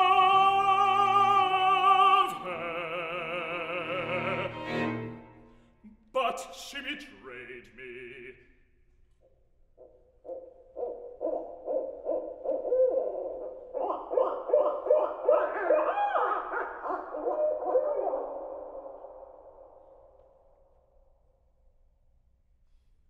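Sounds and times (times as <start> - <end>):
recorded owl hoots over speakers: 9.8 - 19.7.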